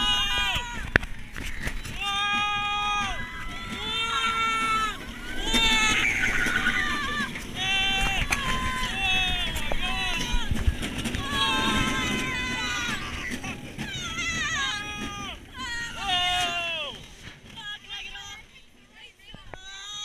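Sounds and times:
wind on microphone: 0.0s - 16.0s
roller coaster riders screaming: 0.0s - 18.4s.

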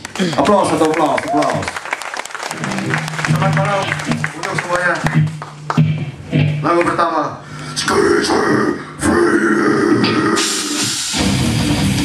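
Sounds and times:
distorted electric guitar: 2.5s - 8.3s, 9.7s - 12.0s
heavy metal band playing: 2.6s - 7.1s, 9.8s - 12.0s.

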